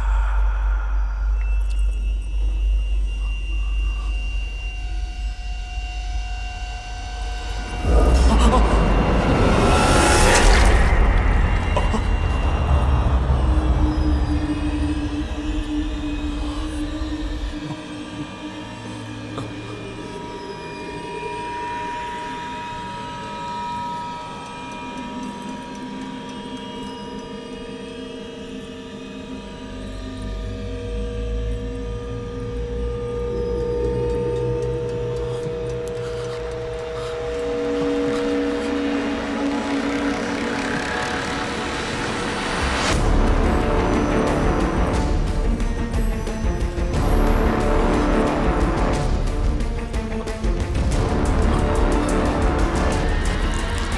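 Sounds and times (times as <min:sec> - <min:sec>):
low churning texture: 0:00.0 - 0:04.7, 0:07.1 - 0:21.2, 0:31.6 - 0:53.9
faint sustained high tones: 0:00.0 - 0:08.2, 0:12.3 - 0:43.0
low rumble drone: 0:00.0 - 0:23.5, 0:29.4 - 0:53.9.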